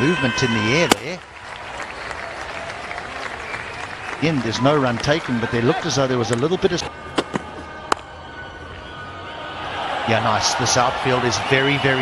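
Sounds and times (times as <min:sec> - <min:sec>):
cricket bat striking ball: 0:00.8 - 0:01.2.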